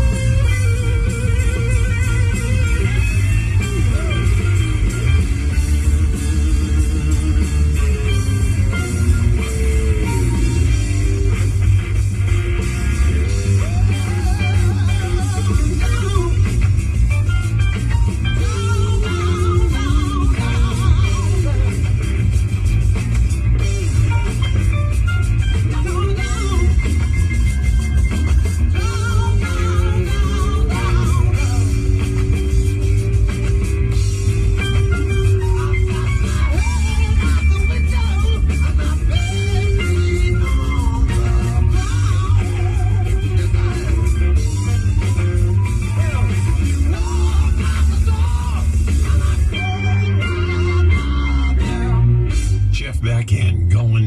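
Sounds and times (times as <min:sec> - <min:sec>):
rock song on car radio: 0:00.0 - 0:54.0.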